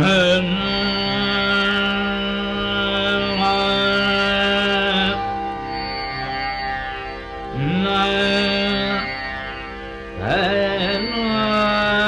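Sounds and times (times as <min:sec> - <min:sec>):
man singing long held note: 0:00.0 - 0:12.0
tanpura drone: 0:00.0 - 0:12.0.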